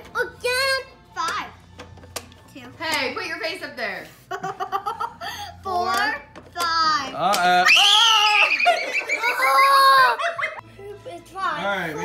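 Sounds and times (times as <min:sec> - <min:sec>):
boy screaming: 0:09.3 - 0:10.2.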